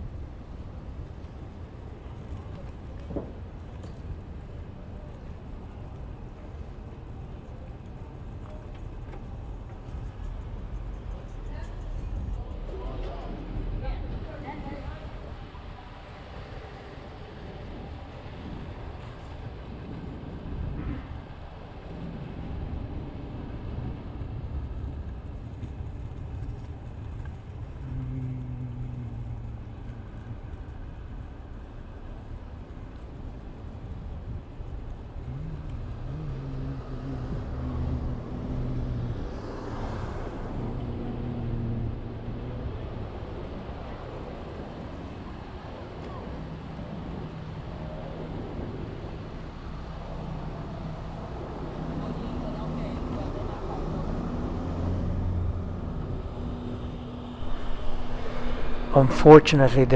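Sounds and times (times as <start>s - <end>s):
scooter wheels rolling on asphalt: 21.8s - 36.0s
car engines humming: 25.8s - 30.6s, 35.0s - 43.5s, 52.5s - 59.9s
wind on microphone: 55.7s - 59.9s.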